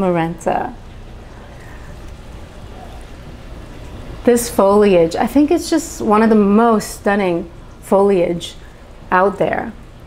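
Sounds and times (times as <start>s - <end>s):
dishwasher humming: 0.0s - 10.0s.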